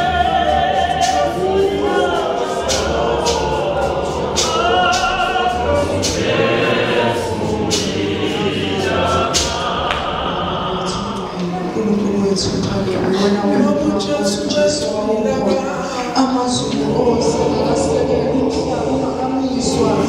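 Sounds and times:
choir singing a hymn: 0.0 - 20.0
sharp percussive hits: 0.9 - 11.2.

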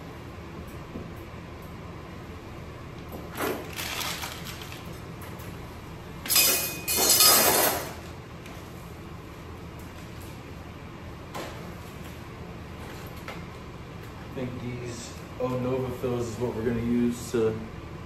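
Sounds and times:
surgical instruments clinking: 6.3 - 7.9.

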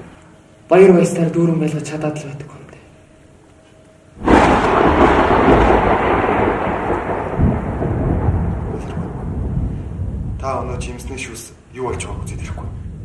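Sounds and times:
rain-like hiss: 4.2 - 13.0
thunder clap and rumble: 4.2 - 13.0.

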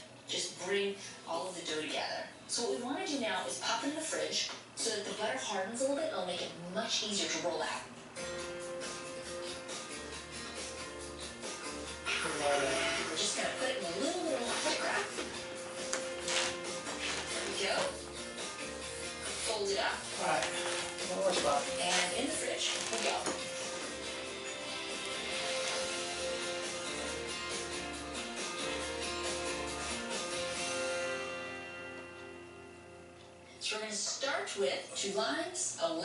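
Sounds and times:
voice: 0.3 - 7.9, 12.2 - 15.2, 17.4 - 18.0, 19.4 - 23.4, 33.6 - 36.0
background music with held notes: 8.0 - 33.6.

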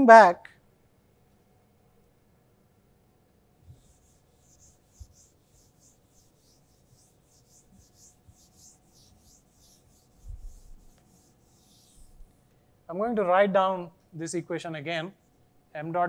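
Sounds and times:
duster wiping whiteboard: 3.6 - 12.4.

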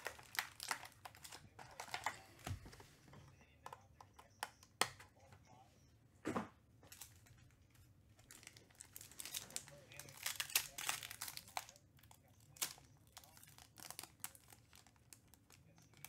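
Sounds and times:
foil pack crinkling and tearing: 0.0 - 2.2, 8.2 - 16.0.

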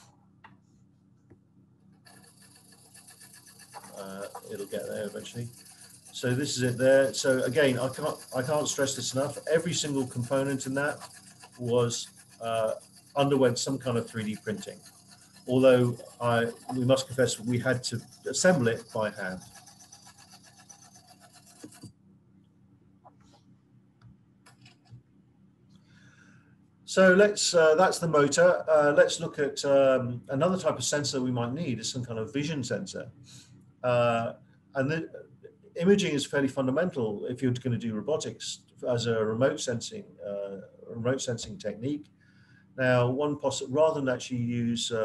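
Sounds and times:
small electric motor ticking whirr: 2.0 - 22.0.

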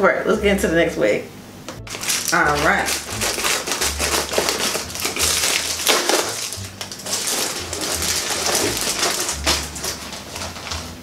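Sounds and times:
plastic crinkling: 1.8 - 11.0
scissors cutting plastic bag: 1.9 - 11.0.

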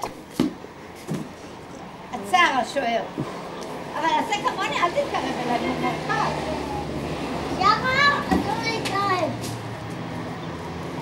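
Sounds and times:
child calling out: 7.6 - 9.4.

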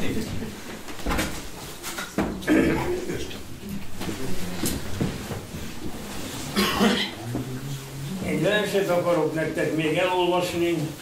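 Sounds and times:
man clearing his throat: 2.4 - 3.1, 6.5 - 7.5
man coughing: 6.5 - 7.3.

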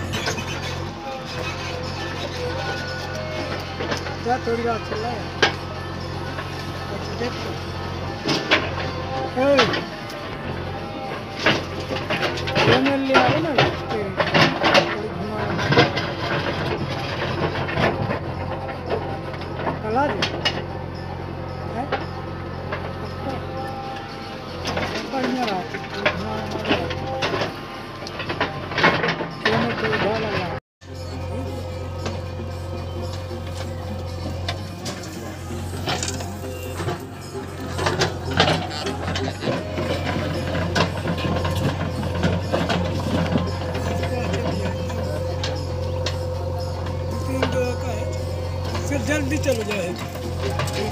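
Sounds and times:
diesel engine under load: 0.0 - 50.9
metallic clanks of digger bucket: 0.0 - 50.9.

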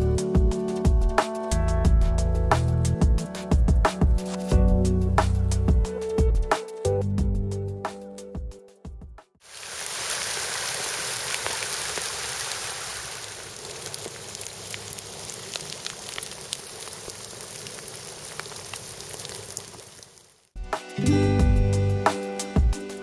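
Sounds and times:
hail falling on gravel and water: 9.5 - 20.4.

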